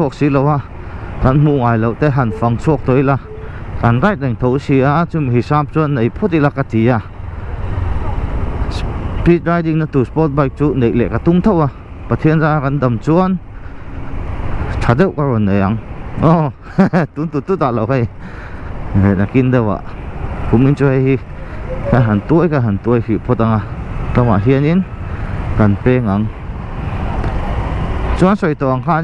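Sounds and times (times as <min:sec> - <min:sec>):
motorcycle engine rumbling: 0:00.0 - 0:05.7
man speaking: 0:00.0 - 0:07.1, 0:08.7 - 0:13.4, 0:20.5 - 0:24.8
man talking: 0:00.0 - 0:07.1, 0:08.7 - 0:13.4, 0:14.7 - 0:18.2, 0:18.9 - 0:24.9, 0:25.6 - 0:26.4, 0:28.2 - 0:29.0
traffic noise: 0:00.0 - 0:29.0.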